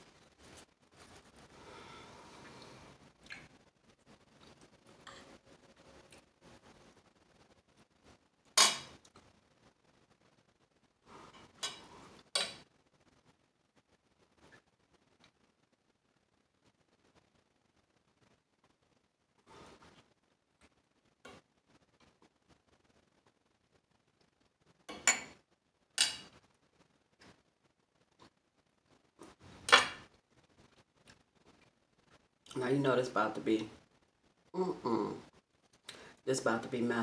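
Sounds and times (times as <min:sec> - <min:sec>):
cutlery clinking against dishes: 0:08.6 - 0:08.9, 0:11.6 - 0:12.6, 0:24.9 - 0:25.4, 0:26.0 - 0:26.3
cutlery scraping: 0:08.6 - 0:09.0, 0:11.3 - 0:12.6, 0:24.9 - 0:25.4, 0:26.0 - 0:26.3, 0:29.6 - 0:30.1.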